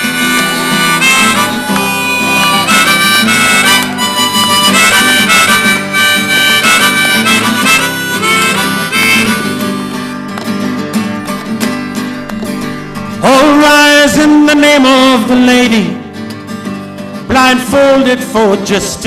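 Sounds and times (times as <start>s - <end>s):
harmonica: 0.0s - 15.2s
strummed acoustic guitar: 0.0s - 19.0s.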